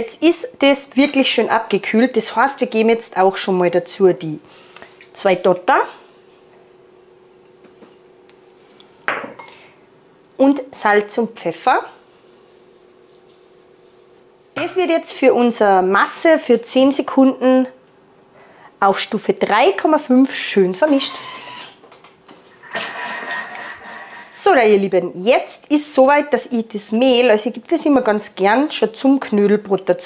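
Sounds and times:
glass bowl clinking on metal bowl: 14.6 - 15.1
food processor motor whirring: 20.9 - 21.8.

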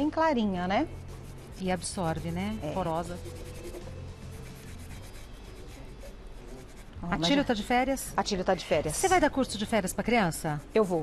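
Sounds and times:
cloth scrubbing on wood: 0.9 - 6.9.

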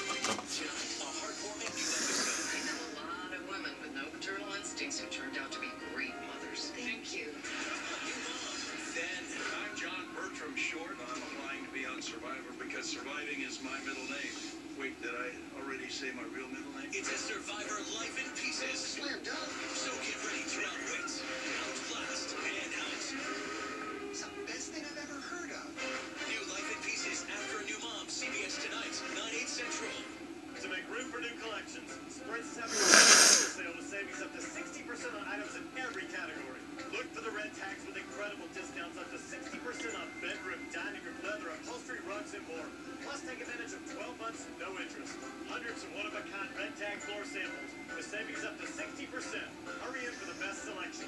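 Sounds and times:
television music with voice: 0.0 - 51.0.

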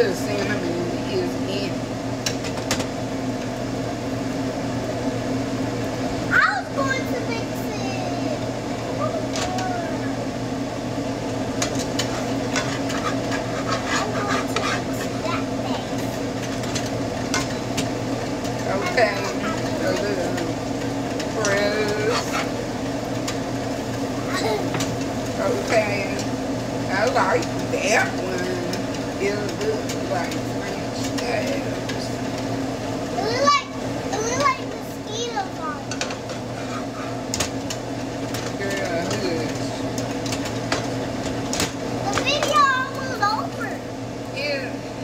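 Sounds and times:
voices: 0.0 - 1.9, 6.3 - 10.3, 11.7 - 22.7, 24.2 - 37.2, 38.4 - 40.1, 42.0 - 44.9
steady low hum: 0.0 - 45.0
whisk scraping against bowl: 12.0 - 15.3, 21.4 - 22.6, 36.0 - 37.4.

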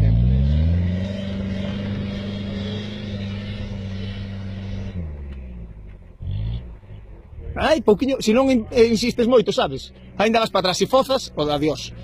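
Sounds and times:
diesel engine revving: 0.0 - 12.0.

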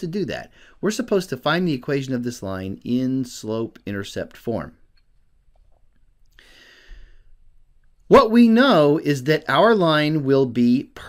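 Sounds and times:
person breathing softly: 0.5 - 0.8, 6.3 - 7.5.

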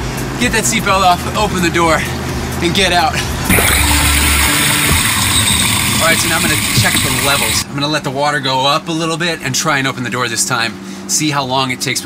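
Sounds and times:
water rushing into car: 3.5 - 7.6.

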